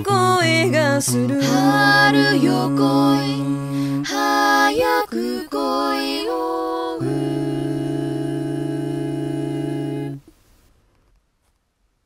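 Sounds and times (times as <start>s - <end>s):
a cappella group holding a chord: 0.0s - 10.3s.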